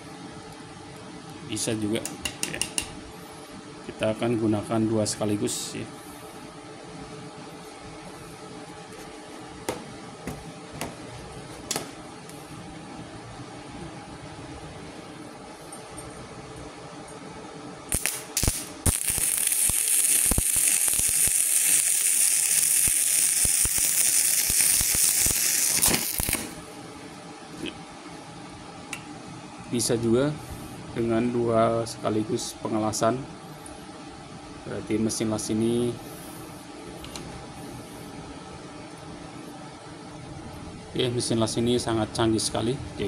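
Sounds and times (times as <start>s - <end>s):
faint steady hum: 0.0s - 43.0s
arc striking with sputters: 17.9s - 26.6s
arc welding crackle: 17.9s - 26.8s.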